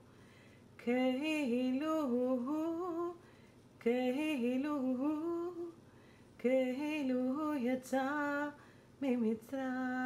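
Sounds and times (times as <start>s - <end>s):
woman singing unaccompanied: 0.8s - 10.0s.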